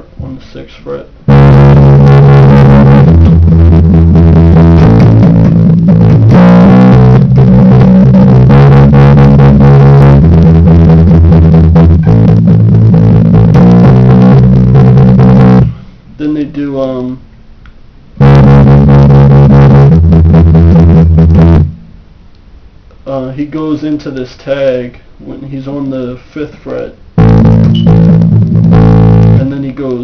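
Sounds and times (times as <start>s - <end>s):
electric bass guitar bassline: 1.3s - 15.9s, 18.2s - 22.0s, 27.2s - 30.0s.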